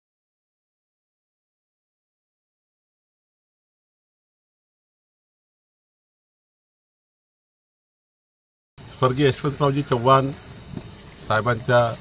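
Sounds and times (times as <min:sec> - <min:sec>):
crickets chirping: 0:08.8 - 0:12.0
man speaking: 0:09.0 - 0:10.4, 0:11.3 - 0:12.0.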